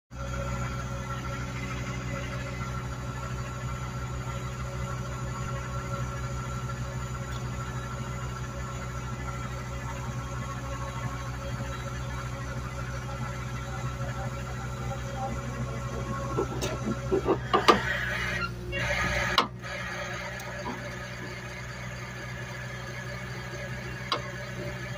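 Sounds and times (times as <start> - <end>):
vehicle engine idling: 0.1 - 24.9.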